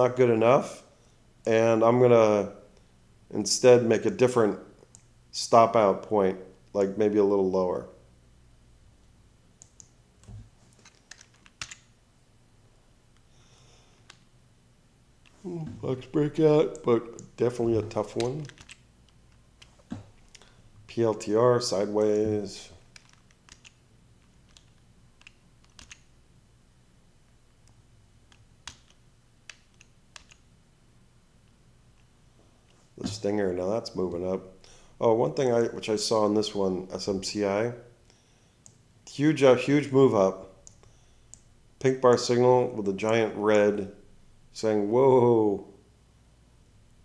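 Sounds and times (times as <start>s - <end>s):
faint low hum: 0.0s - 47.0s
computer keyboard key presses: 18.2s - 18.8s, 23.0s - 23.8s, 24.5s - 26.1s.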